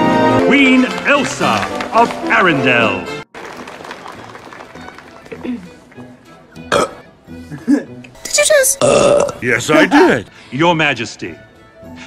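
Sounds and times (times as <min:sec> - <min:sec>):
soft orchestral music: 0:00.0 - 0:06.6
cartoon burp: 0:06.6 - 0:07.2, 0:08.6 - 0:09.5.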